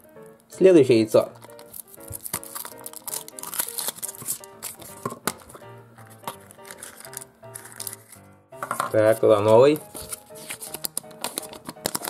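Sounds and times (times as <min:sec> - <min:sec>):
background music melody: 0:00.0 - 0:12.0
foil wrapper crinkling and tearing: 0:01.3 - 0:08.3, 0:09.0 - 0:12.0.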